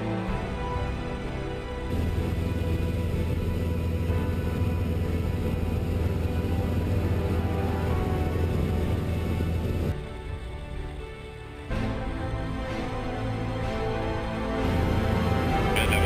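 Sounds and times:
music: 0.0s - 16.0s
light aircraft engine drone: 1.5s - 12.2s, 12.9s - 16.0s.

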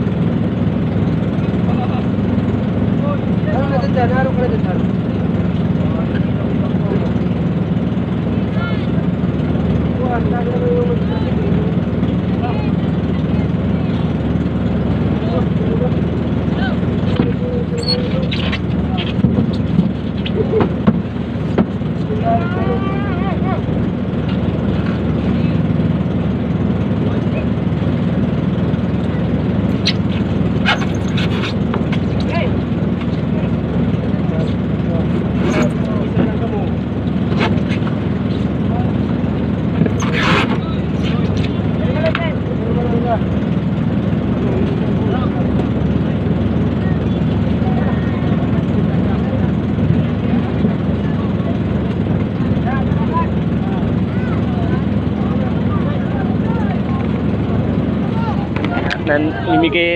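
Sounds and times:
small engine humming: 0.0s - 59.9s
knocks and clatters: 18.0s - 22.1s.

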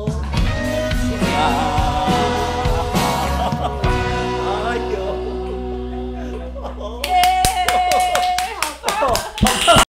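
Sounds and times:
backing music: 0.0s - 8.1s
vocal cheer: 0.0s - 9.9s
people laughing: 2.5s - 9.9s
people clapping: 7.0s - 9.9s.

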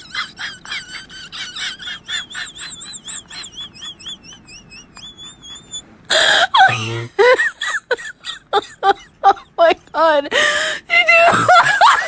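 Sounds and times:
high-pitched chirping: 2.0s - 5.8s.

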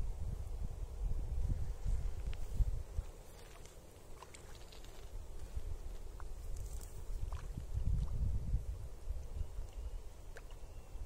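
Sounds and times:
wind rumble on microphone: 0.0s - 11.0s
fish splashing in water: 3.3s - 5.1s.

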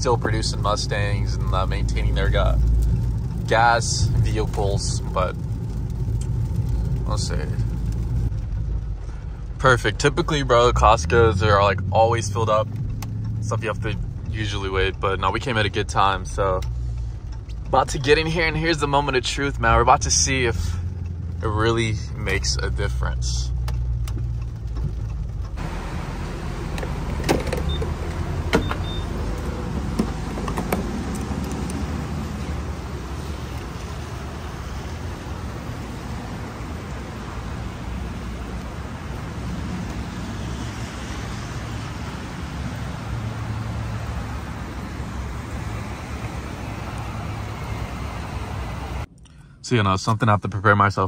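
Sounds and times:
rain: 0.0s - 49.1s
fuel pumping hiss: 25.6s - 49.1s.

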